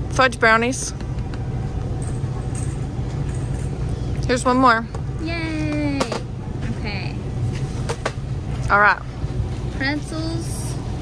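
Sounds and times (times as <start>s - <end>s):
store background rumble: 0.0s - 11.0s.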